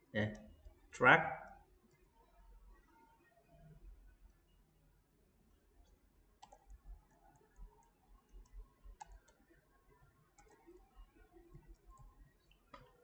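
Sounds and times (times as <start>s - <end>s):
keyboard and mouse clicking: 6.4s - 9.4s, 10.4s - 10.8s, 11.5s - 13.0s.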